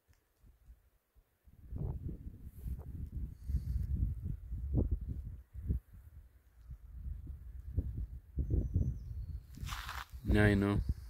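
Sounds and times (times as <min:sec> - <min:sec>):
wind buffeting microphone: 0:01.5 - 0:11.0.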